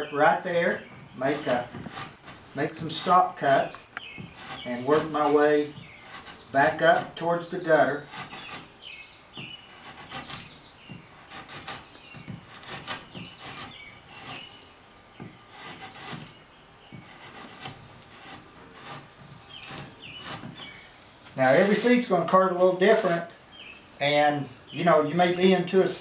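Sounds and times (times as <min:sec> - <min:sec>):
blade scraping wood: 0:00.0 - 0:26.0.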